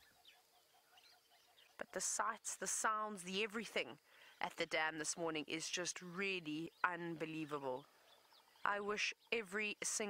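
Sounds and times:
faint distant bird calls: 0:00.0 - 0:10.0.

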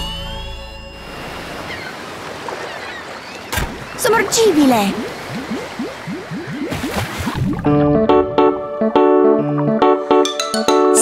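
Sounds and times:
cartoon bubbling bloops: 0:04.1 - 0:08.0.

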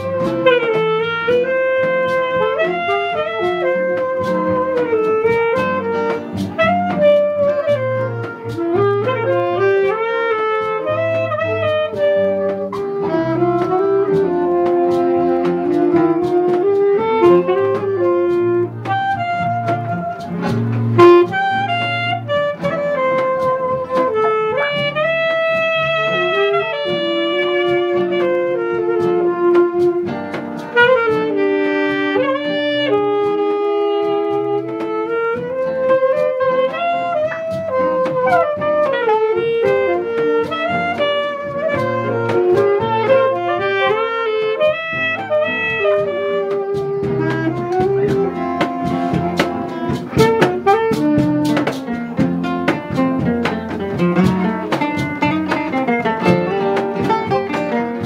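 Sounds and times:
saxophone melody: 0:00.0 - 0:58.0
strummed acoustic guitar chords: 0:46.5 - 0:58.0
sharp knock: 0:47.5 - 0:58.0.

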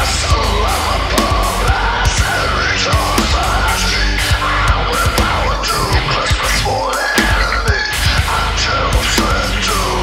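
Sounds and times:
heavy metal song: 0:00.0 - 0:10.0
screamed vocals: 0:00.0 - 0:10.0.

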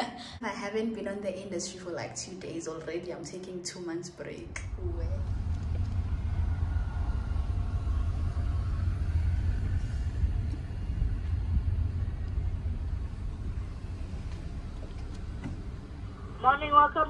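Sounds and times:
car engine idling inside cabin: 0:05.0 - 0:17.0.

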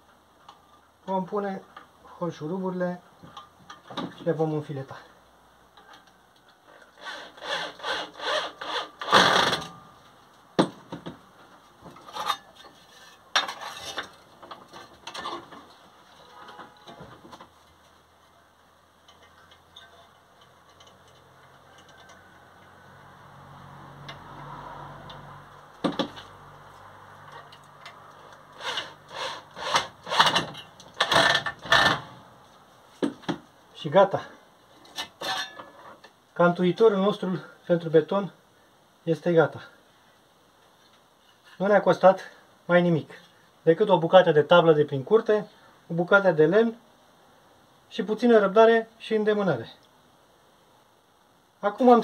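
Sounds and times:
screws creaking into wood: 0:06.7 - 0:09.8, 0:28.2 - 0:32.2.

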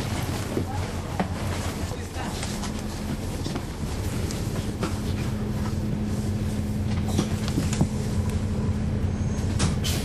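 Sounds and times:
bus diesel engine humming: 0:00.0 - 0:10.0
interior rattles and clicks: 0:06.8 - 0:08.4.

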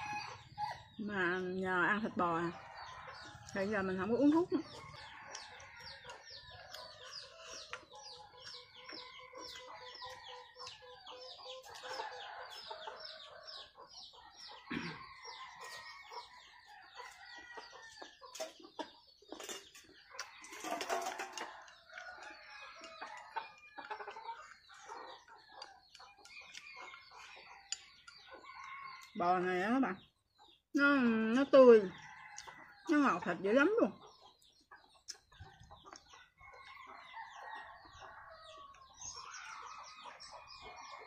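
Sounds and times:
chickens clucking: 0:00.0 - 0:41.0.

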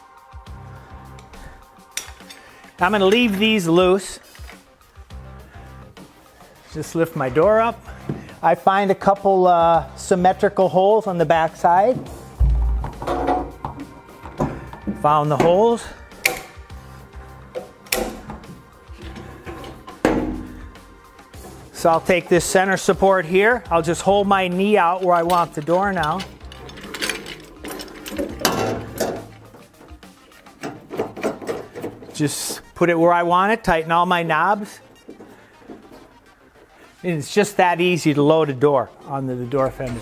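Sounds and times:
dull low thump: 0:12.0 - 0:13.8
metal support arm clicking and knocking: 0:24.9 - 0:32.2.

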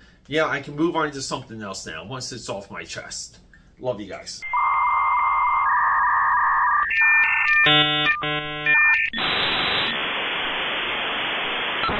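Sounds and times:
loud electronic beep tone: 0:04.4 - 0:10.1
static: 0:04.4 - 0:11.9.

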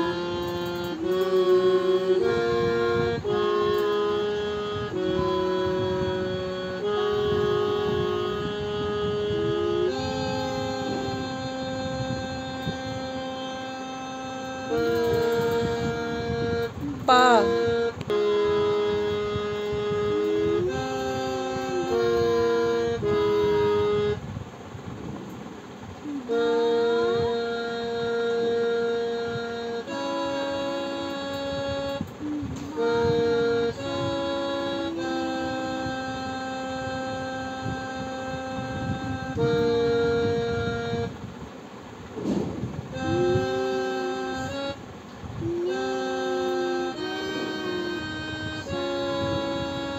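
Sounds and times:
harmonium reedy note: 0:00.0 - 0:24.4, 0:25.3 - 0:49.9
lower harmonium note: 0:00.0 - 0:49.9.

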